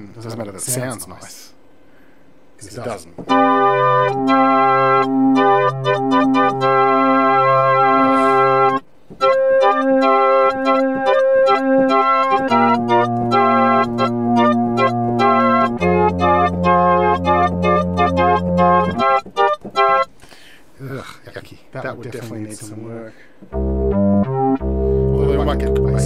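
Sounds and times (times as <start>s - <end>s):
synthesizer chords with bass: 3.3s - 19.2s, 23.5s - 26.0s.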